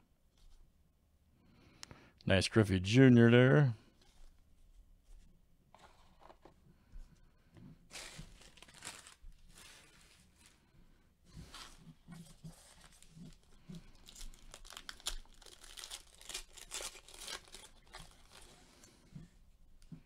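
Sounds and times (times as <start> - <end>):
foil wrapper tearing and crinkling: 7.9 - 10.4, 11.8 - 18.8.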